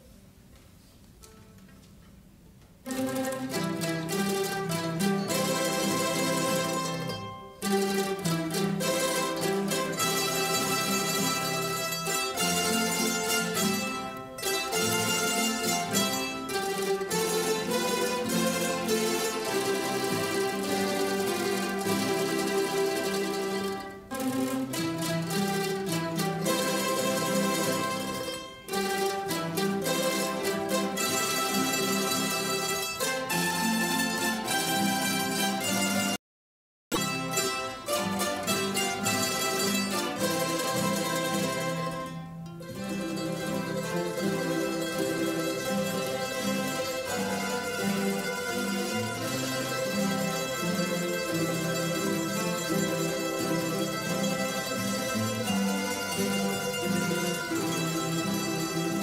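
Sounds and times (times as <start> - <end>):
mandolin orchestra playing: 1.2 - 36.2, 36.9 - 59.0.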